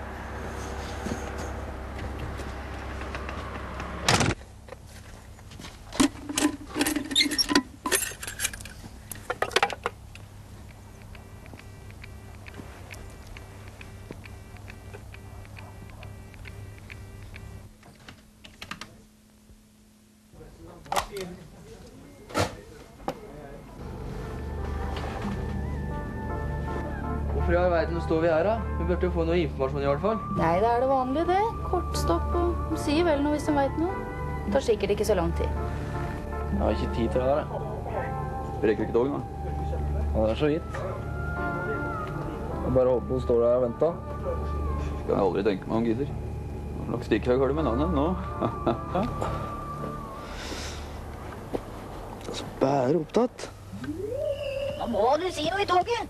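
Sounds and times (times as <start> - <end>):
locomotive cab hum: 0.0 - 18.4, 23.8 - 29.2, 39.2 - 52.2.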